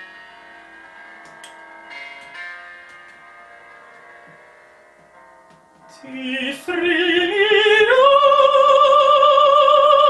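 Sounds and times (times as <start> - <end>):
quiet instrumental accompaniment: 0.0 - 10.0.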